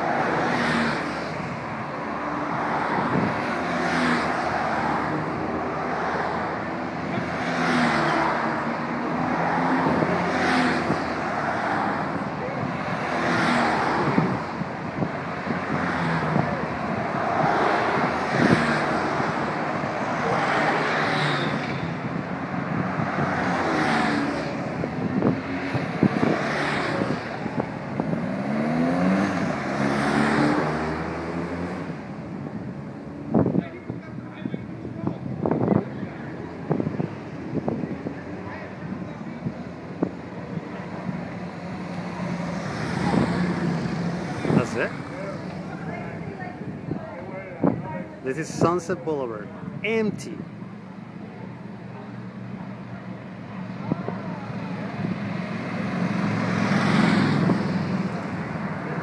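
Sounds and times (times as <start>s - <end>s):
vehicles driving past: 0.0s - 59.0s.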